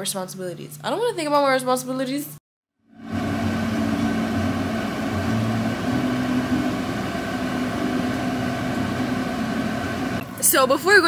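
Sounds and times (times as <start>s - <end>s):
air-conditioning blower: 2.9s - 10.5s.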